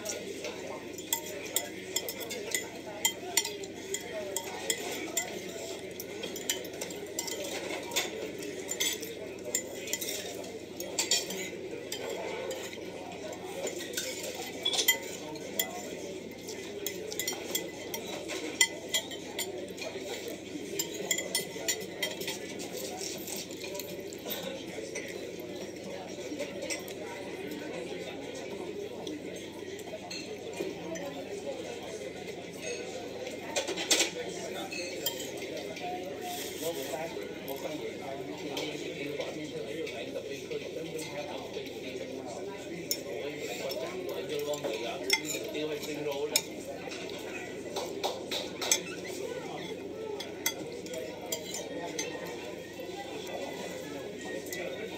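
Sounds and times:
cutlery clinking against dishes: 0:00.0 - 0:54.9
murmur of restaurant chatter: 0:00.0 - 0:54.9.

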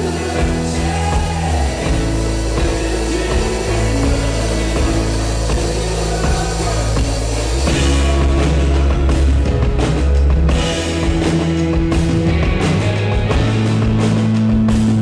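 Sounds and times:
drum kit: 0:00.0 - 0:15.0
electric guitar: 0:00.0 - 0:15.0
heavy bass line: 0:00.0 - 0:15.0
keyboard synthesizer: 0:00.0 - 0:15.0.

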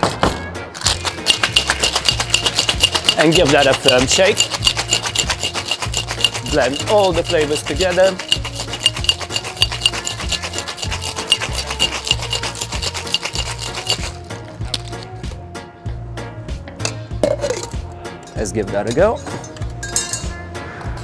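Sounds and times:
ice rattling in cocktail shaker: 0:00.8 - 0:15.0
light clinks of ice and metal: 0:00.9 - 0:15.0, 0:16.8 - 0:20.4.

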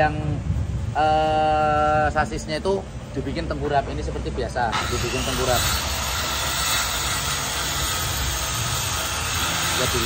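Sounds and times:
power tool whirring: 0:04.7 - 0:10.0.

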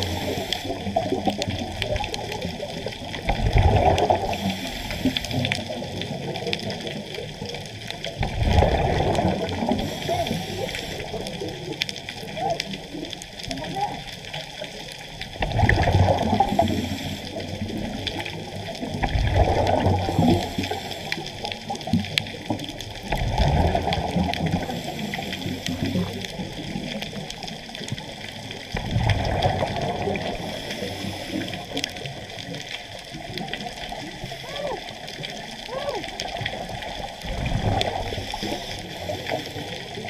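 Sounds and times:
faint breathing hiss: 0:00.0 - 0:01.1, 0:04.2 - 0:05.8, 0:09.6 - 0:11.6, 0:16.4 - 0:18.3, 0:20.0 - 0:21.7, 0:24.5 - 0:26.4, 0:30.2 - 0:32.0, 0:37.8 - 0:40.0
exhaled bubbles underwater: 0:00.0 - 0:40.0.

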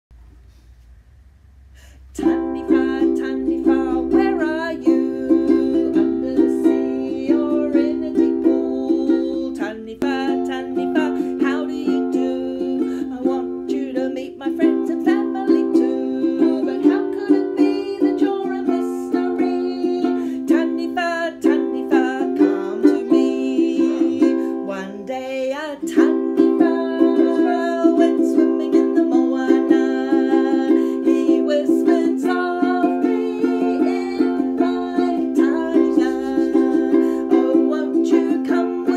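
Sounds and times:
ukulele strumming: 0:02.1 - 0:38.9.

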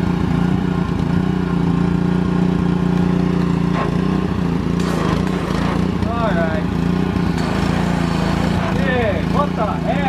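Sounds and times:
pressure washer engine running: 0:00.0 - 0:10.0.

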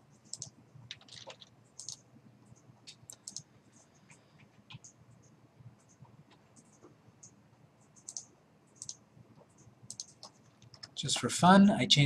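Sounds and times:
computer mouse clicks: 0:00.2 - 0:11.1.

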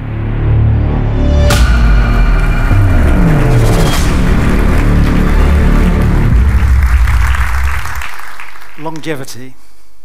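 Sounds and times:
electronic music with deep bass: 0:00.9 - 0:07.9.

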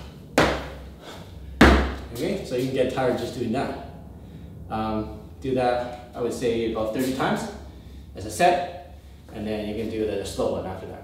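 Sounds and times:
feet thudding on foam mats: 0:00.0 - 0:00.9, 0:01.6 - 0:02.3.

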